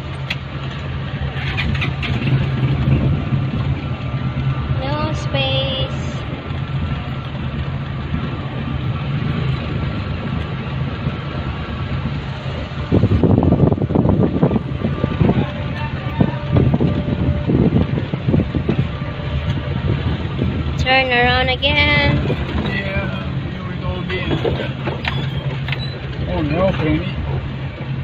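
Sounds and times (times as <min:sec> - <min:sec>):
engine and road hum: 0:00.0 - 0:28.0
knocks and rumbles: 0:24.0 - 0:28.0.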